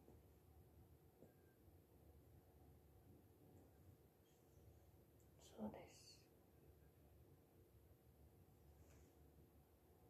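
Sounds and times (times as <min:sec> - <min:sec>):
young woman whispering: 0:05.4 - 0:06.3.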